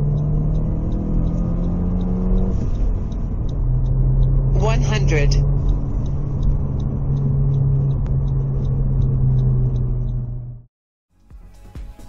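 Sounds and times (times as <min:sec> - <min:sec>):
car engine accelerating hard: 0:00.0 - 0:10.7.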